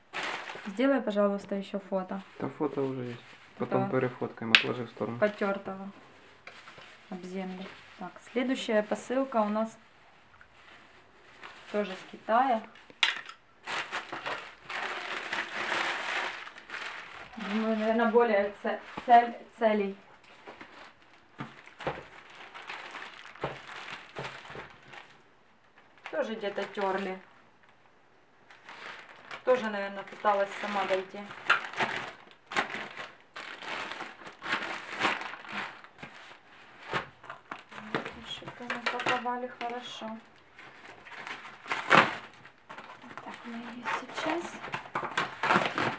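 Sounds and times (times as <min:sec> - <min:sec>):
plastic mailer bag crinkling: 0:00.0 - 0:01.0, 0:10.5 - 0:19.3, 0:20.3 - 0:27.8, 0:28.4 - 0:45.9
scissors cutting plastic: 0:41.2 - 0:45.9.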